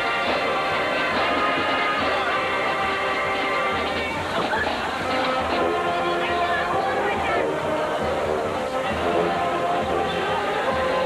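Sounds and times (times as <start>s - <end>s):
drum beats: 0.0s - 11.0s
marching band chords: 0.0s - 11.0s.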